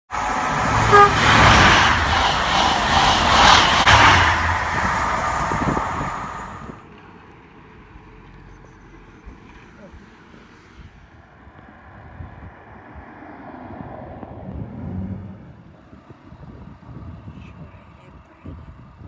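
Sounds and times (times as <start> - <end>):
train passing rushing noise: 0.1 - 7.7
train horn toot: 0.7 - 2.0.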